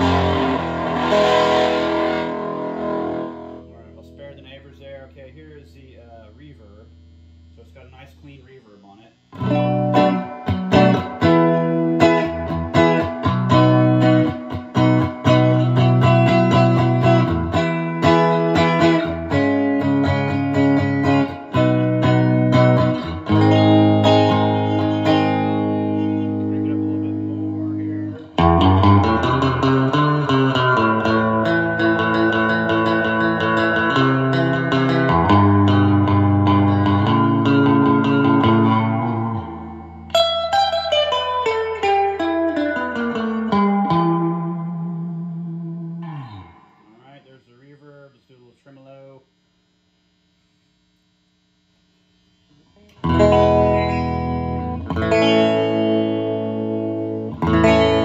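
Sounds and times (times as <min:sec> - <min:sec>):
clean electric guitar with reverb: 0:00.0 - 0:07.8, 0:09.3 - 0:47.0, 0:52.7 - 0:58.0.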